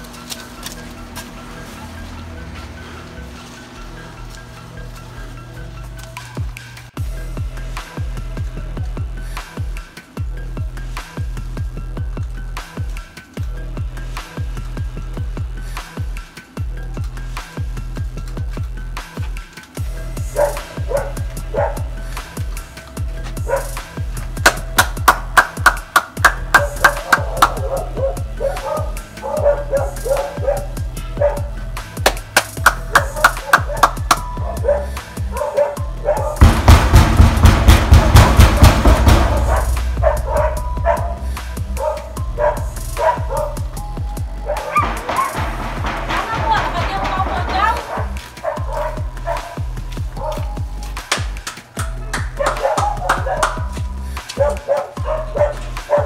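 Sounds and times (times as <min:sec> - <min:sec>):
soundtrack music with deep bass: 0:00.0 - 0:56.0.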